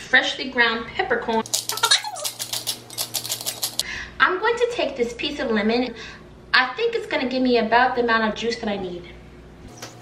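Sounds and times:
pepper mill grinding: 1.4s - 3.8s.

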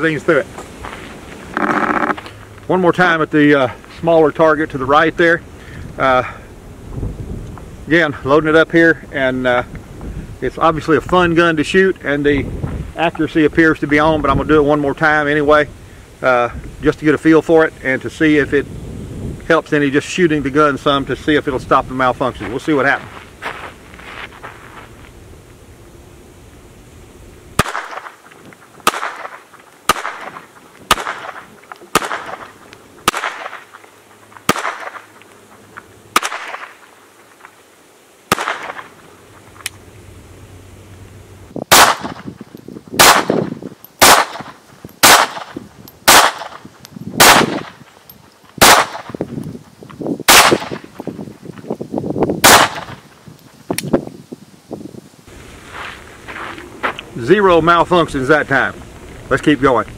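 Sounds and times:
pistol shots: 27.6s - 28.2s, 28.8s - 33.7s, 34.5s - 35.1s, 36.1s - 36.8s, 38.3s - 38.9s, 41.7s - 42.3s, 43.0s - 46.6s, 47.2s - 47.8s, 48.6s - 49.2s, 50.3s - 50.8s, 52.4s - 53.0s.

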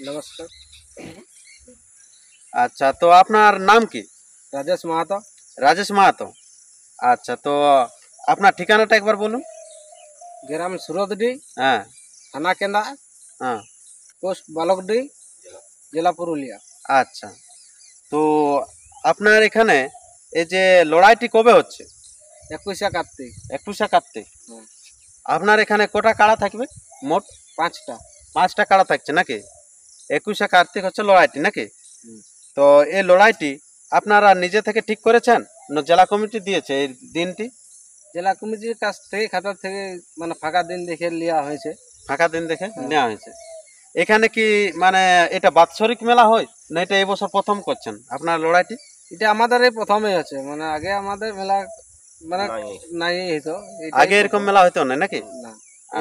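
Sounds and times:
man speaking: 0.0s - 1.2s, 38.2s - 43.4s, 44.0s - 56.0s
men talking: 0.0s - 1.2s, 2.6s - 6.4s, 7.0s - 9.5s, 10.5s - 17.4s, 18.1s - 21.9s, 22.5s - 29.5s, 30.1s - 37.5s, 38.2s - 43.4s, 44.0s - 56.0s
high-pitched insect drone: 0.0s - 56.0s.

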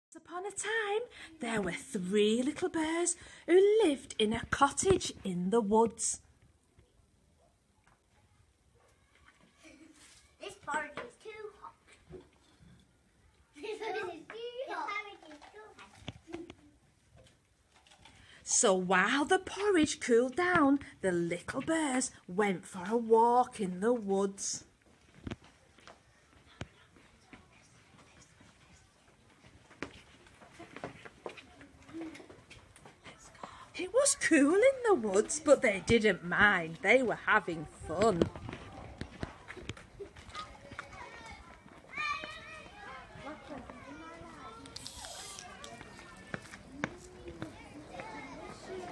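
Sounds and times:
light footsteps on tarmac: 24.6s - 33.7s, 37.6s - 48.9s
children's voices calling: 25.8s - 48.9s.

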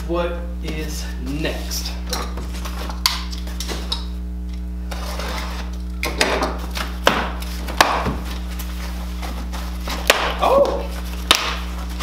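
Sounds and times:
steady electrical hum: 0.0s - 12.0s
packing tape and cardboard tearing: 4.9s - 12.0s.

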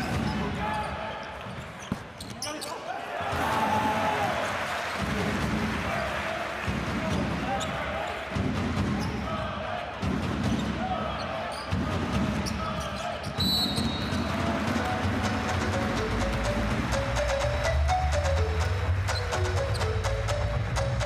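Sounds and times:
arena crowd voices: 0.0s - 17.7s
short high shoe squeak: 1.6s - 2.9s
basketball dribbling thumps: 1.8s - 2.4s.

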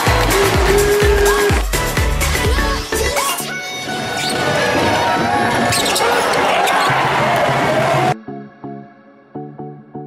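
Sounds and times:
crowd noise in arena: 3.0s - 8.2s
basketball in play: 4.2s - 7.6s
sneakers squeaking on floor: 5.5s - 6.9s.

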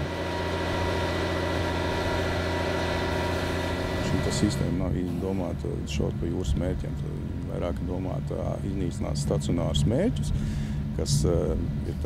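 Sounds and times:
engine running with whine: 0.0s - 12.0s.

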